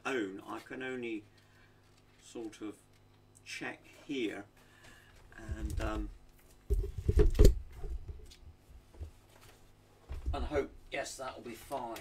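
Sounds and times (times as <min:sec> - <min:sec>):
knocks and thumps on wood: 0:06.7 - 0:08.2.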